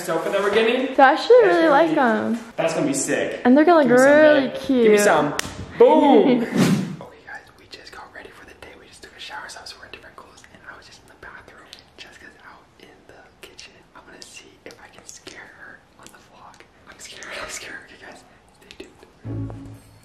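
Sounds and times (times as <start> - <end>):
man whispering: 7.0 - 19.2.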